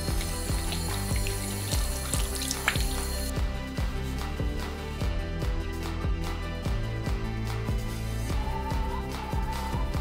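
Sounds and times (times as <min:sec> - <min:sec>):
tap running into sink: 0:00.0 - 0:03.2
background music with steady beat: 0:00.0 - 0:10.0.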